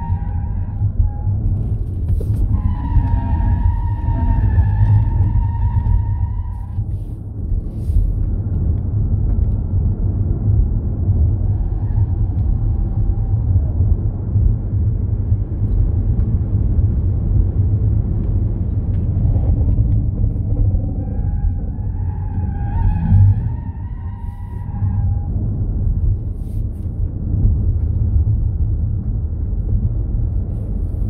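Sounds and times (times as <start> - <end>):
road and wind noise in car: 0.0 - 31.0.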